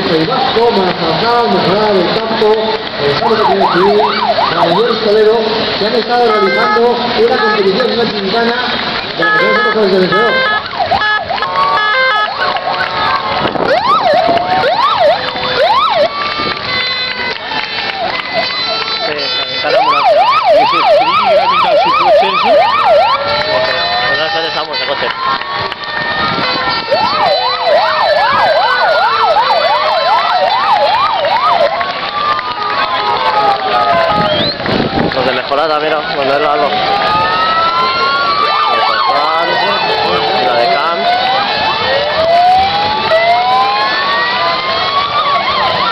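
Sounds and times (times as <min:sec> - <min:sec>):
ambulance sirens wailing: 0:00.0 - 0:45.9
siren yelping: 0:03.2 - 0:08.0, 0:09.1 - 0:35.1, 0:36.3 - 0:45.9.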